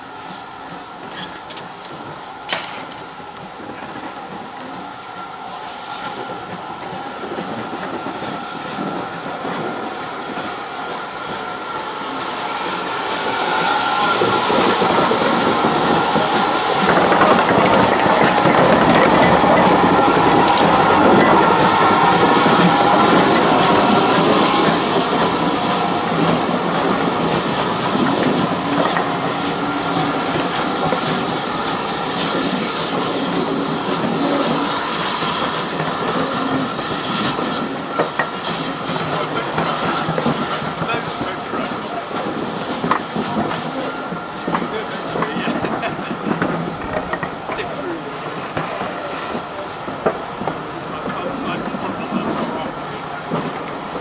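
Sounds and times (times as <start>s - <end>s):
steam locomotive hissing steam: 0.0s - 54.0s
coaches clattering over rail joints: 1.0s - 3.1s, 13.1s - 54.0s.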